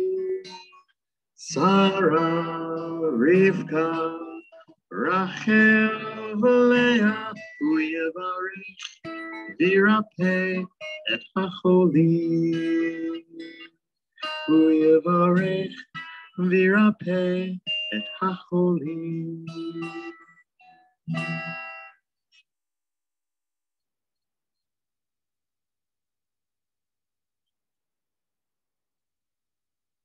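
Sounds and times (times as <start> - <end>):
acoustic guitar: 0.0 - 22.5.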